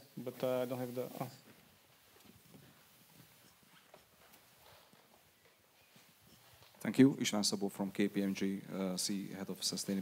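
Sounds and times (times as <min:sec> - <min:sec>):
footsteps on carpet: 0:01.4 - 0:05.2.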